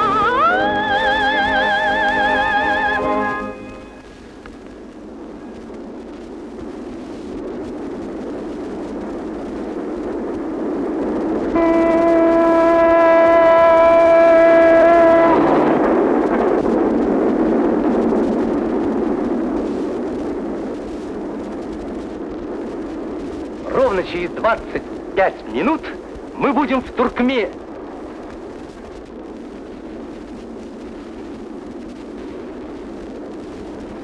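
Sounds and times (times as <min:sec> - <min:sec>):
train whistle: 0:00.0 - 0:04.1, 0:11.5 - 0:15.8
train rumble: 0:00.0 - 0:34.0.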